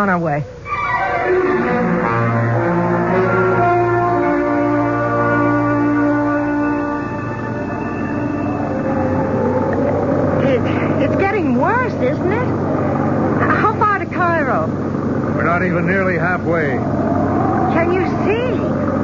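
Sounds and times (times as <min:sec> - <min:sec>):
musical bridge chord: 0:00.6 - 0:11.0
jeep engine drone: 0:00.6 - 0:19.0
whistling wind: 0:00.7 - 0:19.0.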